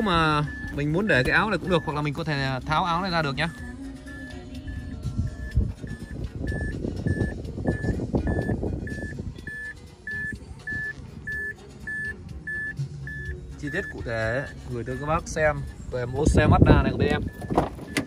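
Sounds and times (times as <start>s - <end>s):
car warning chime beeping: 0.0s - 18.0s.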